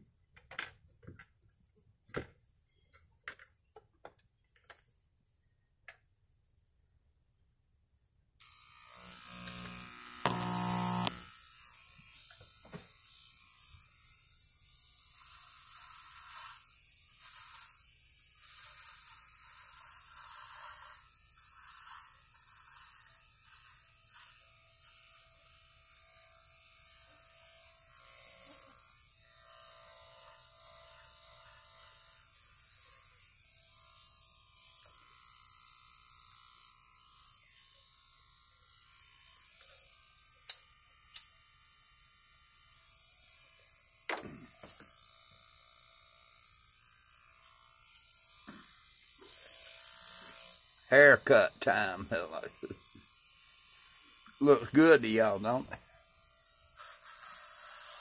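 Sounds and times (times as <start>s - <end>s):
electric hair clippers running: 8.4s - 58.0s.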